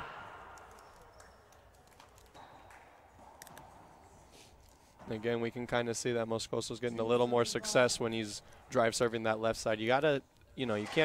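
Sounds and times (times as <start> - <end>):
room sound of indoor court: 0.0 - 11.0.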